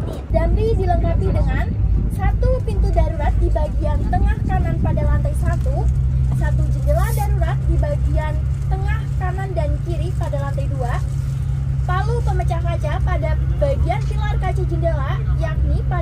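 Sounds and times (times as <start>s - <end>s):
coach engine drone: 0.0s - 16.0s.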